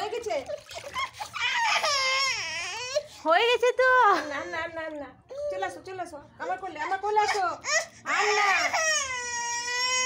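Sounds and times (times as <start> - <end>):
baby crying: 0.8 - 3.1, 7.3 - 10.0.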